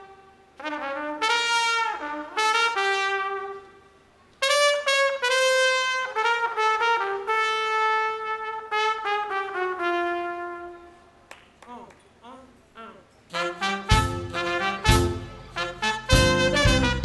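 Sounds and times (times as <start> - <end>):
solo brass melody: 0.0 - 11.1, 13.3 - 17.0.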